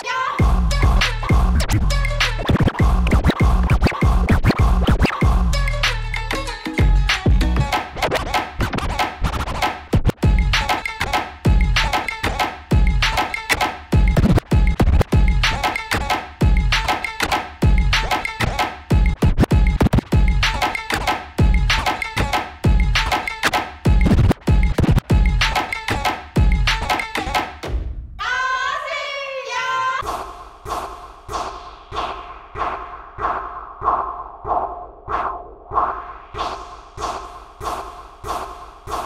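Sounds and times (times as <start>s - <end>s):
hip-hop beat with heavy bass: 0.0s - 27.7s, 35.9s - 39.0s
turntable record scratches: 1.0s - 5.3s, 7.4s - 10.2s, 14.2s - 15.7s, 18.1s - 21.9s, 23.0s - 25.1s.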